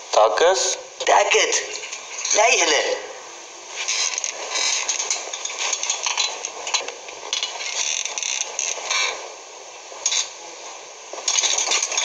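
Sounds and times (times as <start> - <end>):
rustling and scraping: 3.7 - 12.0.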